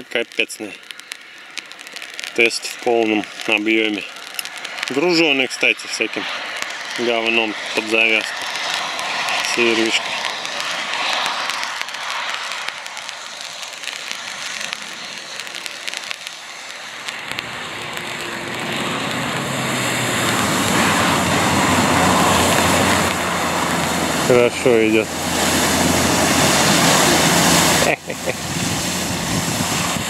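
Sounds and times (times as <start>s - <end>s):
crackly hiss: 0.0s - 30.0s
wheels spinning in mud: 0.0s - 30.0s
car engine working hard: 6.1s - 30.0s.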